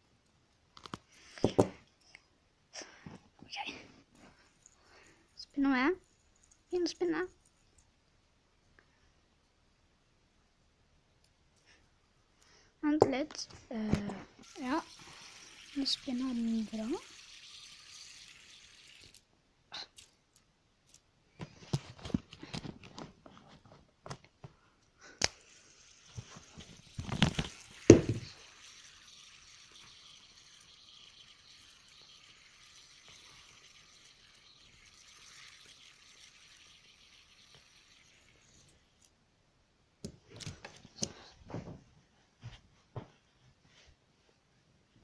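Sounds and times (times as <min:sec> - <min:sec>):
faint steady hiss: 0:00.0 - 0:45.0.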